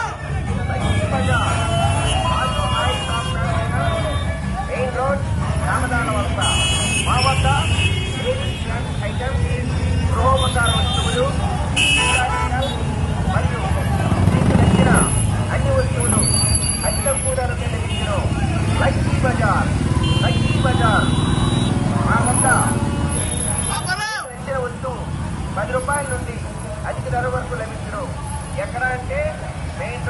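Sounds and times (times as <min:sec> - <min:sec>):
crowd shouting: 0:00.0 - 0:06.9
horns tooting: 0:00.0 - 0:26.4
motorcycle engines running: 0:00.0 - 0:30.0.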